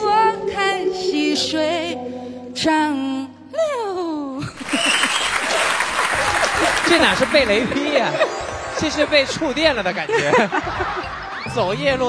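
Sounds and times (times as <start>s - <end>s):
woman singing: 0.0s - 4.5s
audience applauding: 4.6s - 8.2s, 8.8s - 12.0s.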